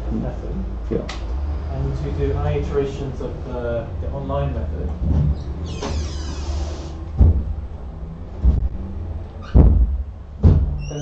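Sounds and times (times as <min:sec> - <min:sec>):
steady low hum: 0:00.0 - 0:11.0
dull thumps: 0:04.9 - 0:10.9.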